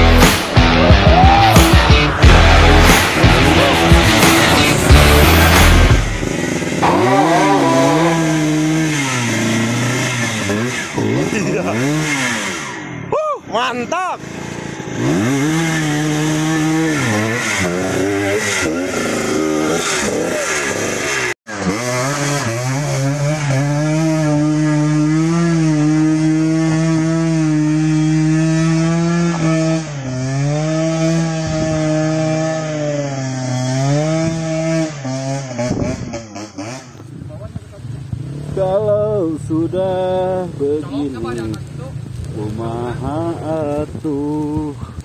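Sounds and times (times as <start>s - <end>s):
dirt bike engine revving: 0.0s - 44.8s.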